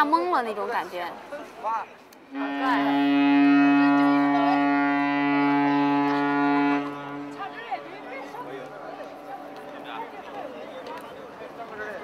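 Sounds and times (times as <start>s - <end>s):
people chattering: 0.0s - 12.0s
ship's horn low blast: 2.3s - 10.2s.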